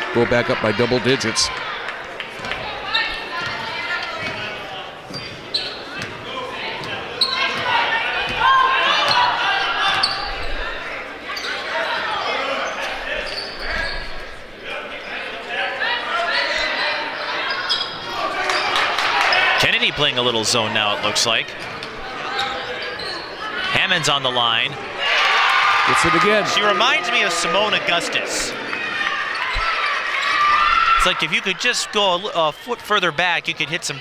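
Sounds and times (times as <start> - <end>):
voices echoing in gym: 0.0 - 34.0.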